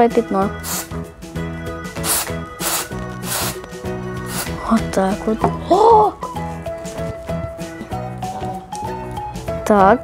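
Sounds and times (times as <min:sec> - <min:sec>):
background music: 0:00.0 - 0:10.0
aerosol spray hissing: 0:00.6 - 0:01.0, 0:01.9 - 0:04.7.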